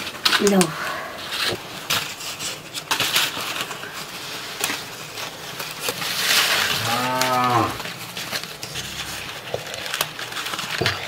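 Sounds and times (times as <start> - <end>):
cow mooing: 6.7 - 8.0, 8.7 - 9.4.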